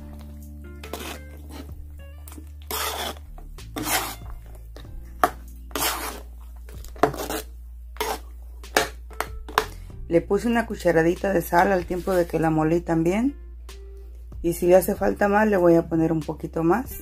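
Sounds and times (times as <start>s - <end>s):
spoon scraping metal pan: 0.8s - 4.5s, 5.2s - 9.7s.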